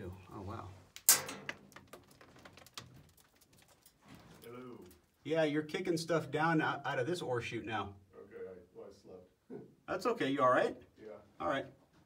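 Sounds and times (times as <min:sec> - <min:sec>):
pebbles trickling and rattling: 0:01.5 - 0:04.6.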